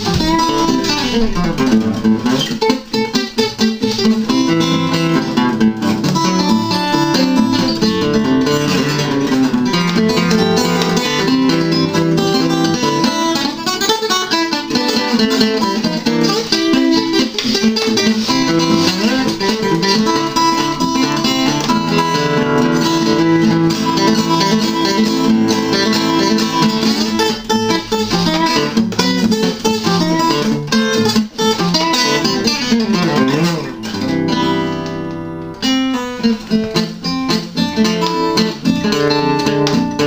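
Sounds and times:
acoustic guitar playing: 0:00.0 - 0:40.0.

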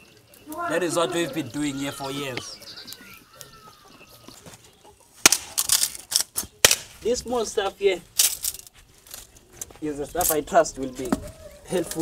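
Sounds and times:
wooden sticks clattering: 0:05.2 - 0:07.0, 0:08.1 - 0:10.4.

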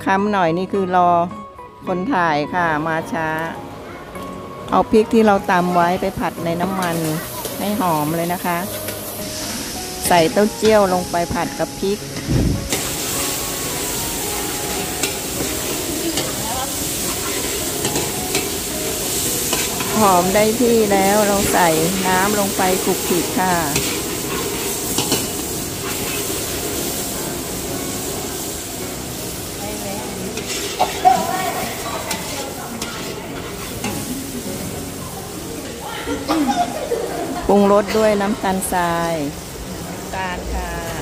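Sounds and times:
frying in oil in a wok: 0:05.0 - 0:35.4, 0:37.5 - 0:41.0
metal spatula scraping pan: 0:23.0 - 0:26.4, 0:30.3 - 0:34.1.

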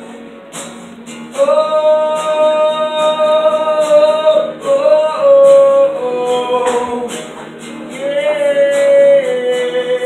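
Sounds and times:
guitar: 0:00.0 - 0:10.0
man singing: 0:01.3 - 0:10.0.

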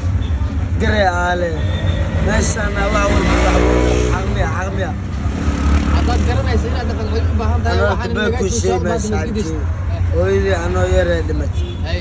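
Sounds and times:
young man talking: 0:00.7 - 0:05.2, 0:05.8 - 0:12.0.

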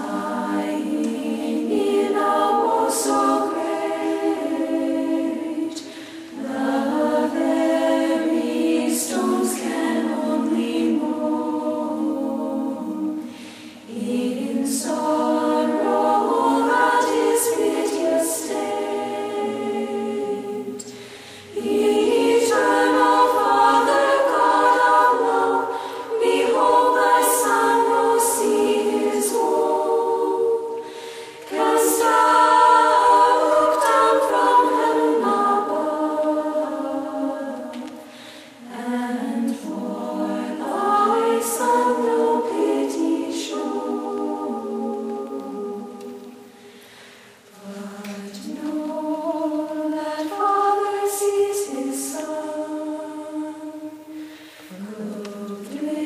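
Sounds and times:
women's choir singing hymn: 0:00.0 - 0:56.0.

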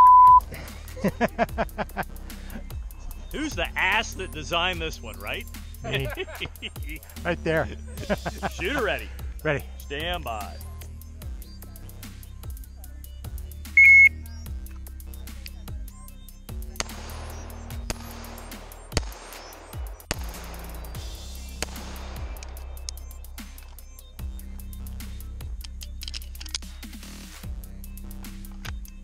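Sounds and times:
shot timer beep: 0:00.0 - 0:00.4, 0:13.8 - 0:14.1
background music with steady beat: 0:00.0 - 0:29.0.

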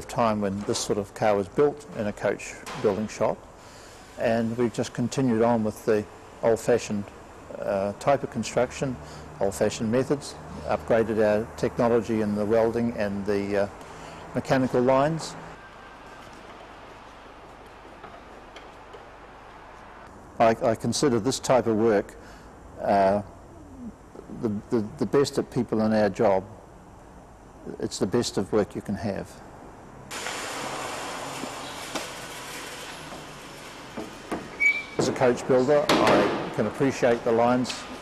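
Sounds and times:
steady low hiss: 0:00.0 - 0:38.0
steady hiss: 0:01.2 - 0:09.7
short high squeak: 0:34.5 - 0:35.0.

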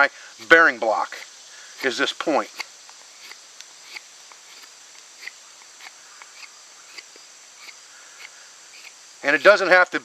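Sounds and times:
insect chorus: 0:00.0 - 0:10.0
knife scraping wood: 0:01.1 - 0:09.0.

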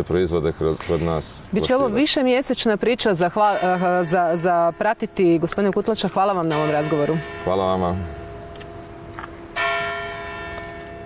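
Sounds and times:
bell ringing: 0:03.4 - 0:08.6.

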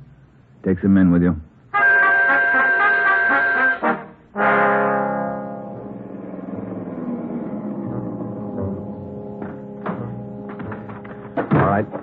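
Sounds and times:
brass orchestral chords: 0:01.7 - 0:10.4.

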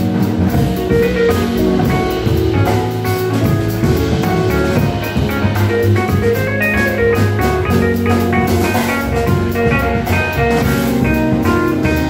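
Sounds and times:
double bass: 0:00.0 - 0:12.0
drum kit cymbals: 0:00.0 - 0:12.0
electric guitar: 0:00.0 - 0:12.0
keyboard: 0:00.0 - 0:12.0.

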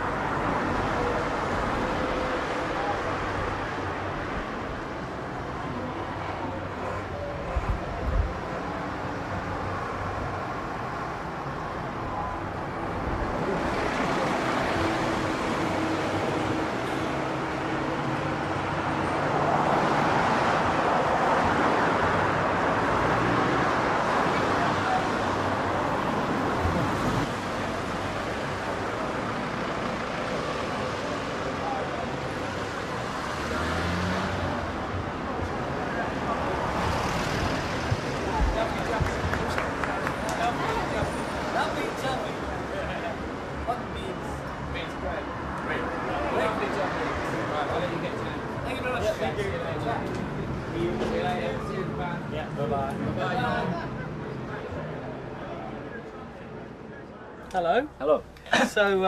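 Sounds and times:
passing road traffic: 0:00.0 - 0:59.0.

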